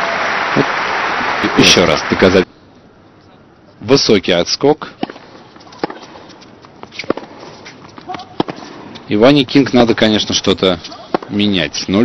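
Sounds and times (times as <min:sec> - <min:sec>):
steady background hiss: 0:00.0 - 0:12.0
tennis ball bouncing on hard court: 0:05.0 - 0:09.0, 0:10.9 - 0:11.4
racket striking tennis ball: 0:05.0 - 0:09.1, 0:10.8 - 0:11.4.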